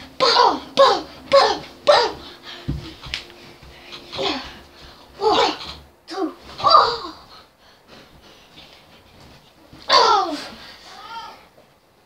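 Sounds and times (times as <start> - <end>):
boy yelling: 0.2 - 2.2, 9.9 - 11.5.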